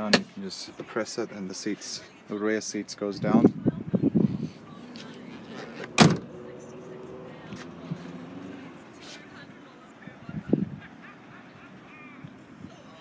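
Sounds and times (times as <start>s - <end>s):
car tailgate thump: 5.8s - 6.3s.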